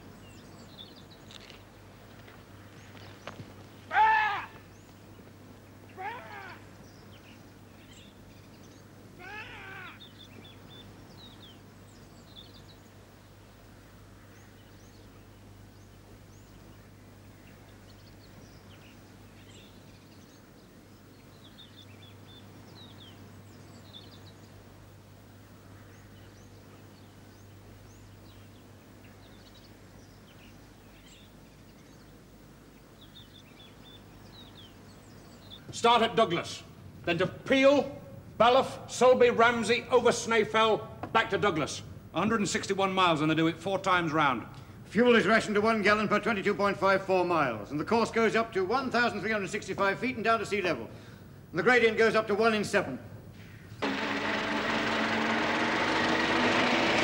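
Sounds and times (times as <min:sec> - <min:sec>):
birds chirping and twittering: 0:00.0 - 0:24.6, 0:25.3 - 0:41.0
loud wavering bird calls: 0:02.7 - 0:05.2, 0:05.9 - 0:11.6.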